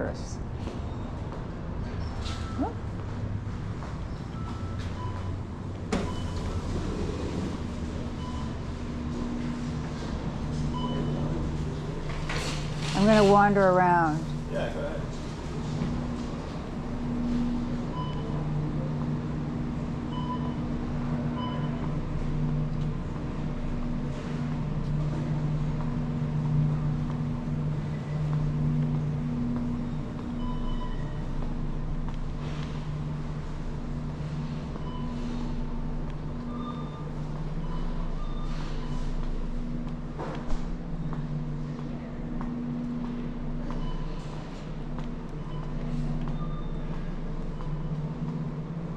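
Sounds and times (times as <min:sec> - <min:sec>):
steady low hum: 0:00.0 - 0:48.9
short electronic beeps: 0:29.9 - 0:31.3, 0:36.4 - 0:39.2, 0:45.4 - 0:48.0.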